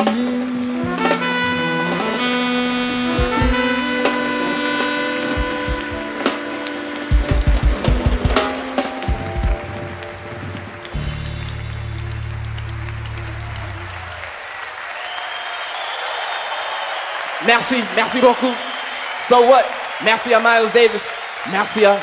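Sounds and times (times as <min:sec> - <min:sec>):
jazz-funk band playing: 0:00.0 - 0:14.1
audience applause: 0:00.0 - 0:22.0
drum kit hits: 0:02.2 - 0:13.1.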